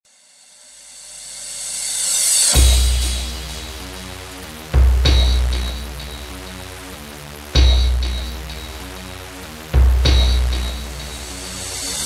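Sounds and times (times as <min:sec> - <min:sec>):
deep bass hit: 0:02.6 - 0:04.0, 0:04.7 - 0:06.4, 0:07.6 - 0:08.8, 0:09.7 - 0:11.4
sustained low synth notes: 0:02.6 - 0:12.0.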